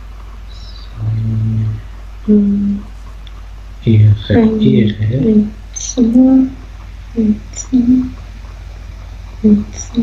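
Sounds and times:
low electrical hum: 0.0 - 10.0
man's hesitation sound: 0.4 - 2.0, 3.8 - 6.0.

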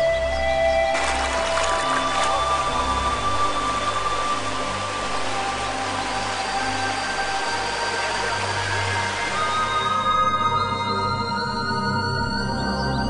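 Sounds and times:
ambient music tones: 0.0 - 13.0
low drone: 0.0 - 13.0
flowing river water: 0.8 - 10.3.

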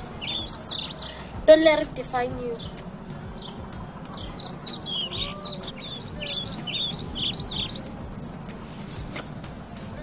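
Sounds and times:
birds chirping: 0.0 - 10.0
low outdoor rumble: 0.0 - 10.0.

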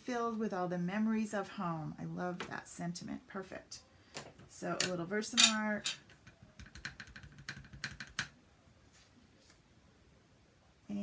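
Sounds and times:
plastic taps and clicks: 4.2 - 8.3.

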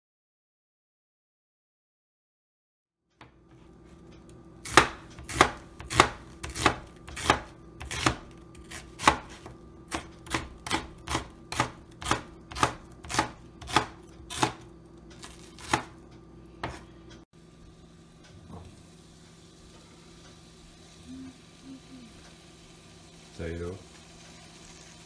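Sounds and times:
knife chopping on cutting board: 4.6 - 16.0, 16.6 - 16.9.

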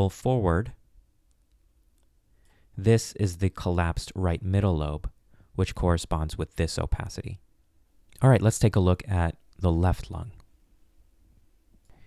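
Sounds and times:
man speaking: 0.0 - 0.8, 2.8 - 7.4, 8.1 - 10.4.

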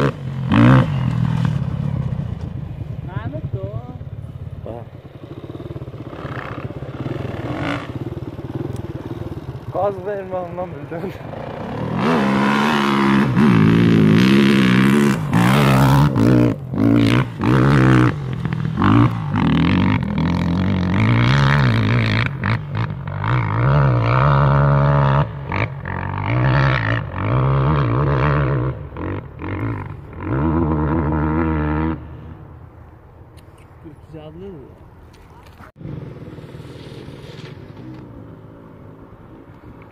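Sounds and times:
dirt bike engine revving: 0.0 - 32.4.

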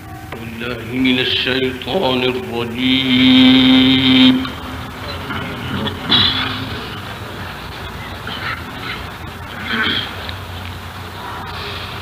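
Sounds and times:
audience calling out and murmuring: 0.0 - 12.0
old recording hiss: 0.0 - 12.0
man reciting a held note: 0.3 - 7.6.

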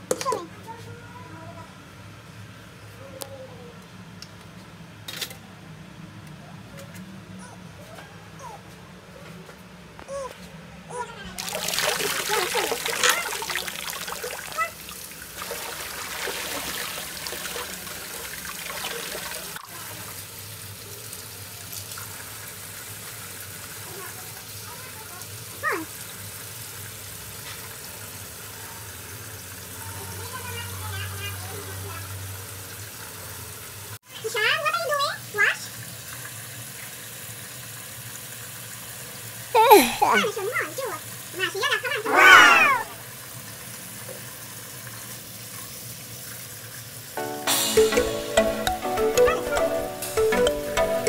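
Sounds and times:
tap water splashing on fruit: 11.4 - 20.2.

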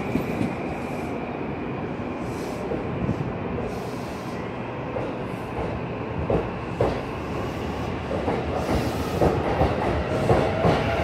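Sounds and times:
electric train rolling rumble: 0.0 - 11.0.

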